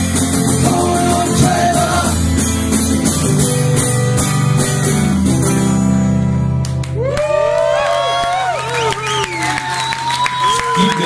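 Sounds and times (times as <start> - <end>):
acoustic guitar strummed: 0.0 - 6.8
person singing: 0.4 - 2.3.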